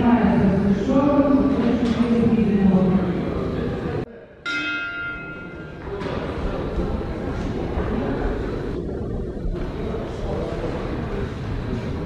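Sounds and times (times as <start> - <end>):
murmur of voices: 0.0 - 12.0
boxing ring bell: 4.4 - 5.9.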